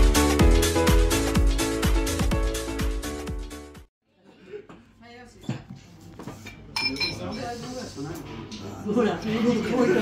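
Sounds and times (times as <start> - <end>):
tableware clinking: 6.4 - 7.6.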